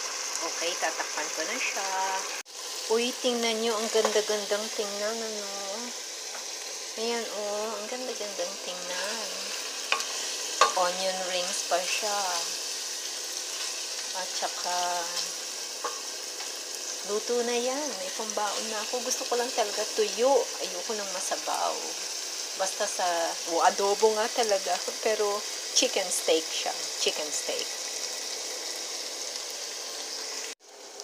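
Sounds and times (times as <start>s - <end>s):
chicken and onions sizzling in a pan: 0.0s - 31.0s
wooden spatula scraping a pan: 13.0s - 14.1s.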